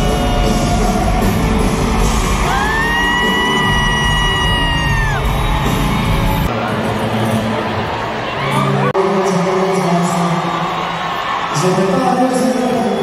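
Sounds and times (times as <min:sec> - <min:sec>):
live band music over sound system: 0:00.0 - 0:07.8.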